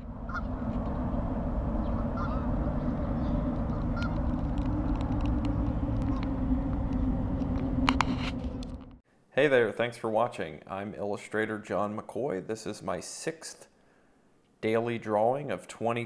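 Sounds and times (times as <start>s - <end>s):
low outdoor rumble: 0.0s - 9.0s
goose honks: 0.3s - 0.6s, 2.0s - 4.3s.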